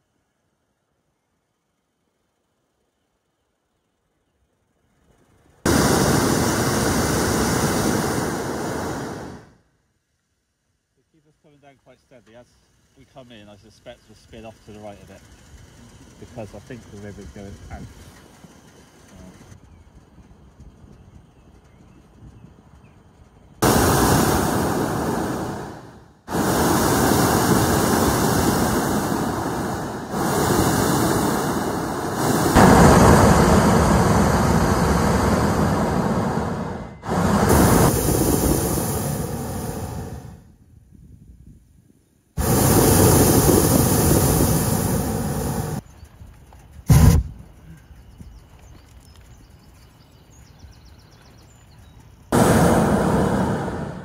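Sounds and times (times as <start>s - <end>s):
propane burner firing loud blasts: 5.7s - 9.6s, 13.1s - 19.6s, 23.6s - 40.6s, 42.4s - 45.8s, 46.9s - 47.5s, 52.3s - 54.0s.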